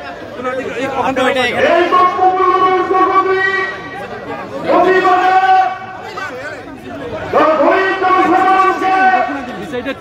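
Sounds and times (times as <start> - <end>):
man chanting a slogan: 1.2 - 4.0, 4.6 - 6.0, 7.2 - 9.5.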